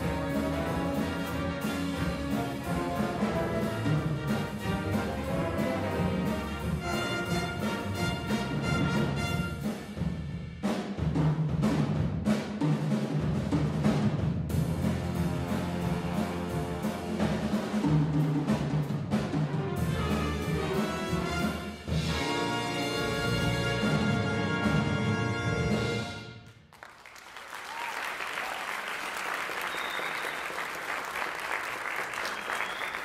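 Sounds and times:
jazz big band playing: 0:00.0 - 0:12.3, 0:13.3 - 0:26.4.

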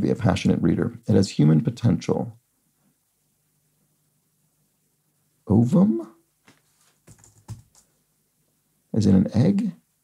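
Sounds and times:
faint keystrokes on keyboard: 0:06.5 - 0:07.9.

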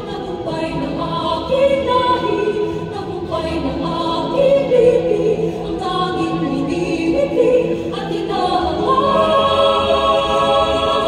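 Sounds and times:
mixed choir singing: 0:00.0 - 0:11.0.

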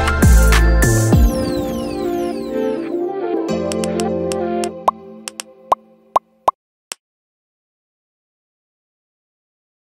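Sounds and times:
synthesizer music: 0:00.2 - 0:06.1.

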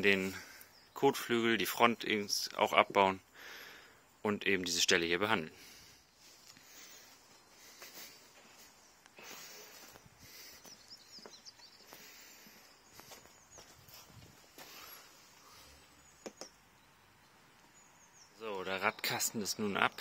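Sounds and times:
soft high bird chirps: 0:00.0 - 0:03.4, 0:05.6 - 0:20.0
faint background noise: 0:00.0 - 0:20.0.

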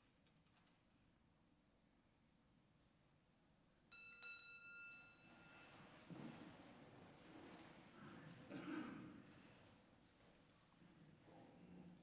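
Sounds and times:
small bell ringing: 0:03.9 - 0:05.3.

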